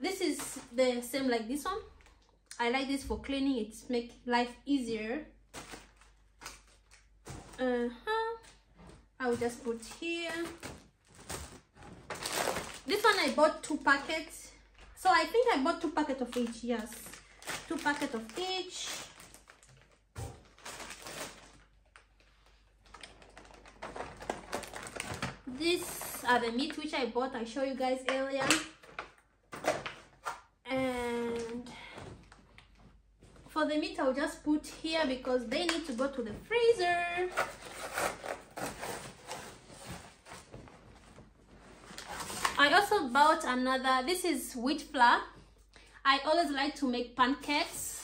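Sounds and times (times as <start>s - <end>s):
plastic packaging rustling: 5.5s - 7.7s, 8.4s - 26.9s, 37.2s - 42.9s.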